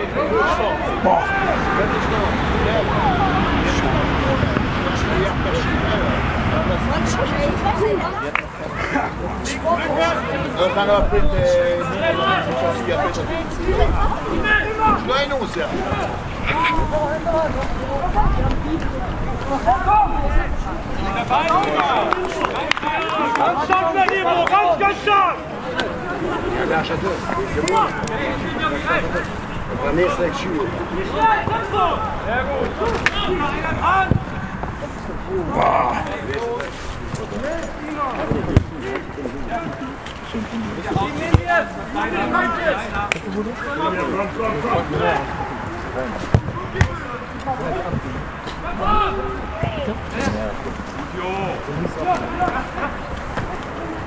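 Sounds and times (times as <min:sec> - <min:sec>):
players shouting: 0:00.0 - 0:54.0
football being kicked: 0:41.3 - 0:41.5.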